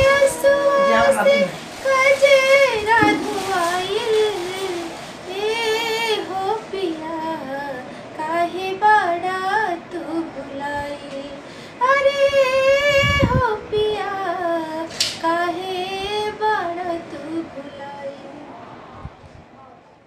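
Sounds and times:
woman singing unaccompanied: 0:00.0 - 0:18.5.

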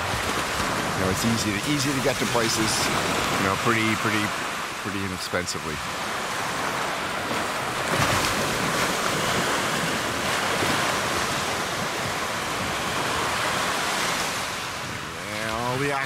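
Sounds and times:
waves breaking on beach: 0:00.0 - 0:16.0
wind on microphone: 0:05.9 - 0:16.0.

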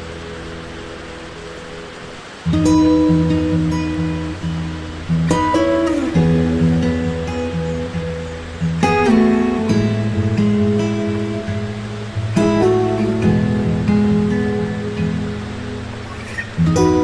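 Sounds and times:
soft guitar chords ringing: 0:00.0 - 0:17.0.

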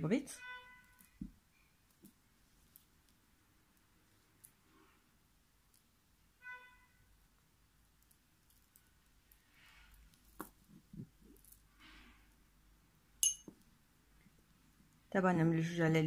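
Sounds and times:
beads clicking and clinking: 0:07.8 - 0:11.7.

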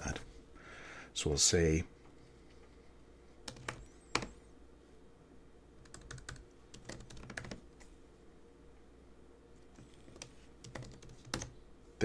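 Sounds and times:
typing on computer keyboard: 0:03.5 - 0:04.4, 0:05.8 - 0:07.6, 0:10.0 - 0:11.5.

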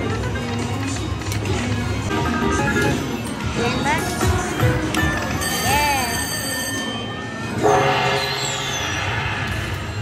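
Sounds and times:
slot machine chime tones: 0:05.1 - 0:09.0.

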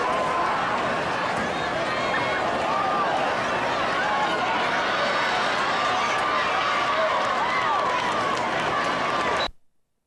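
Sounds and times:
stadium crowd shouting and cheering: 0:00.0 - 0:09.5.

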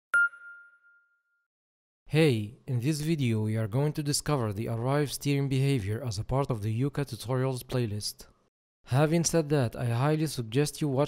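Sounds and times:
bright bell-like ding: 0:00.1 - 0:01.4.

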